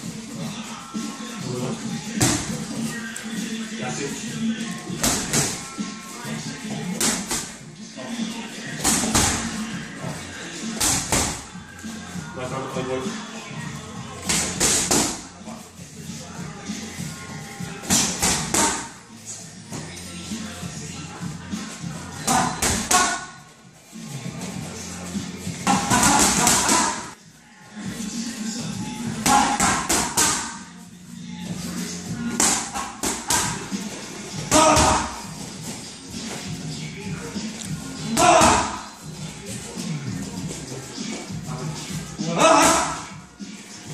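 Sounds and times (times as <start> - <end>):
background music: 0.0 - 43.9.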